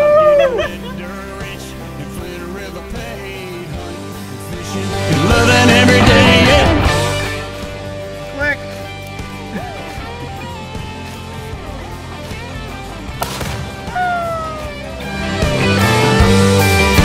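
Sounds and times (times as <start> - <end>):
quiet background music: 0.0 - 16.7.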